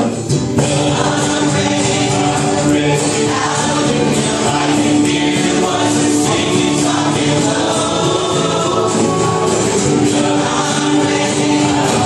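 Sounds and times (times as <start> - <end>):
strummed acoustic guitars: 0.0 - 12.0
upright bass: 0.0 - 12.0.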